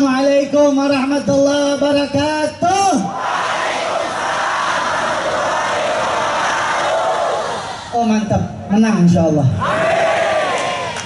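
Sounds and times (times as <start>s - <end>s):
large crowd shouting together: 3.0s - 8.0s, 9.6s - 11.0s.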